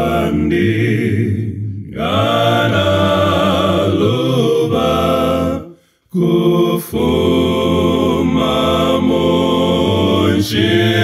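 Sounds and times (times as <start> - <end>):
male voices singing in harmony: 0.0 - 11.0.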